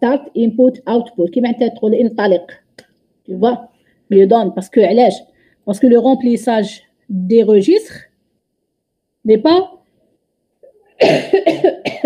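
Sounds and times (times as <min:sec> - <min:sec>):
woman coughing: 0:11.0 - 0:12.0.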